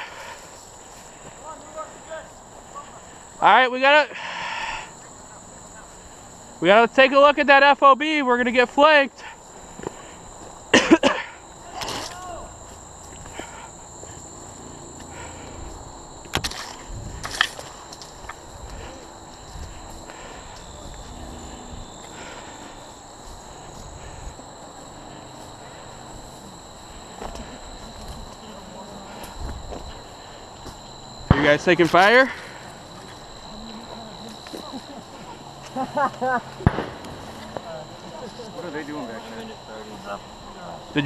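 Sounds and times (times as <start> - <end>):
steady high-pitched whine: 0.0 - 41.0
footsteps brushing through grass: 11.5 - 35.7.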